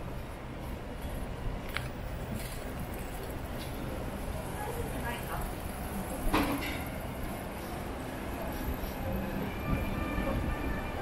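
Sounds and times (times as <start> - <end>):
steady low street rumble: 0.0 - 11.0.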